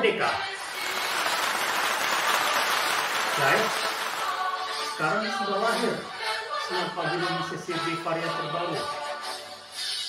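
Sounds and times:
crowd applause: 0:00.6 - 0:05.0.

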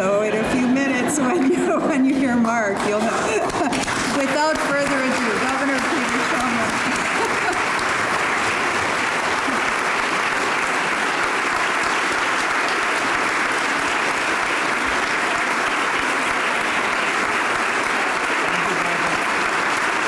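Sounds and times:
audience applauding: 0:01.3 - 0:20.0.

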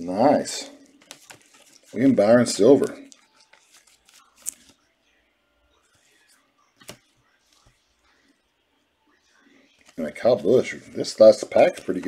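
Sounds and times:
faint rustling of cards: 0:00.5 - 0:04.9, 0:05.7 - 0:08.4, 0:09.3 - 0:12.0.

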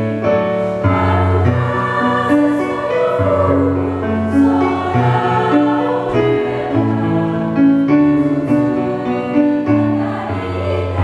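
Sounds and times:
choir singing in parts: 0:00.6 - 0:11.0.

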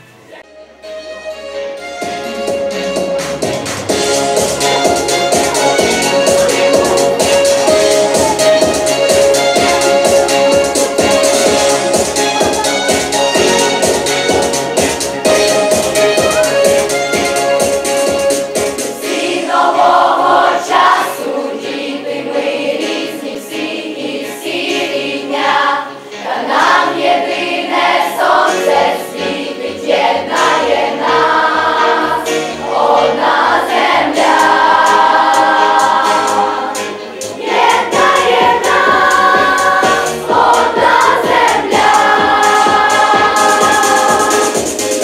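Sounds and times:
instrumental backing track: 0:00.0 - 0:45.0
steady bass beat: 0:02.5 - 0:18.8, 0:37.2 - 0:45.0
children's choir singing: 0:04.0 - 0:45.0.

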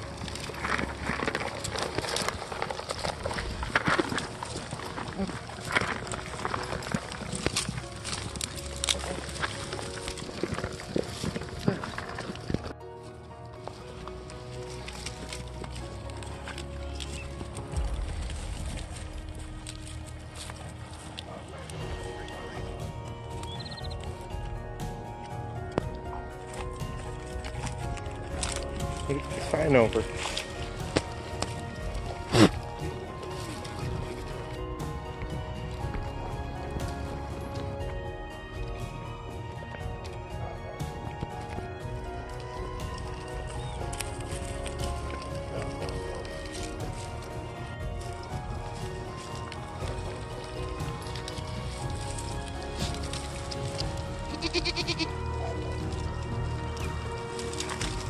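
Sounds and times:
rustling: 0:00.0 - 0:40.3, 0:40.9 - 0:58.0
background music: 0:00.0 - 0:58.0
goats feeding: 0:00.0 - 0:58.0
goat calls: 0:54.3 - 0:55.2.

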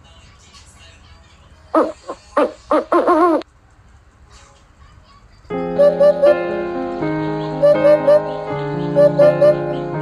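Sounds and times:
bird hooting: 0:01.8 - 0:03.4, 0:05.7 - 0:06.6, 0:07.6 - 0:09.9.

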